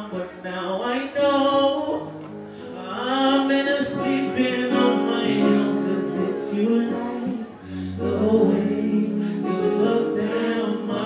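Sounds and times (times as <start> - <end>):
backing band: 2.2 - 11.0
voices singing sustained notes: 4.0 - 11.0.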